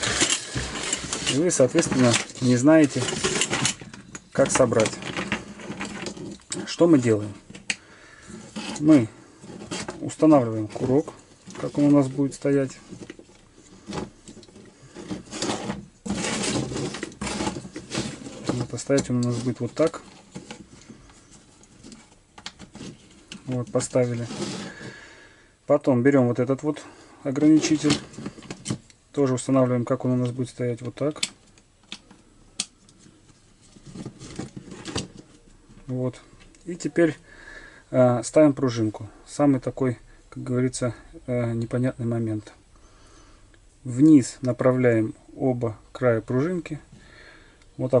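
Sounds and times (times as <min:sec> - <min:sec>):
plastic parts clicking and scraping: 0:00.0 - 0:24.9, 0:27.3 - 0:36.6.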